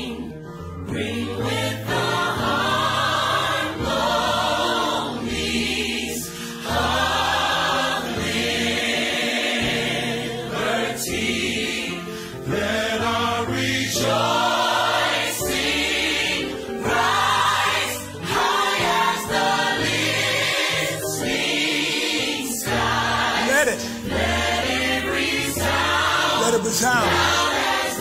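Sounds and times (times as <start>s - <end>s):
gospel choir singing: 0.0s - 28.0s.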